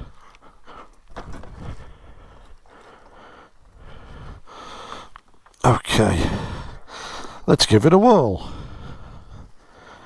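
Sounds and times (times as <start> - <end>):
breathy huffs: 0.0 - 7.5, 8.3 - 10.0
rustling on microphone: 1.1 - 2.7.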